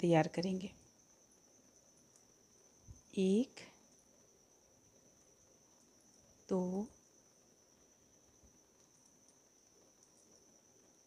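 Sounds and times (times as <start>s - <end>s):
faint high-pitched tone: 6.5s - 7.0s.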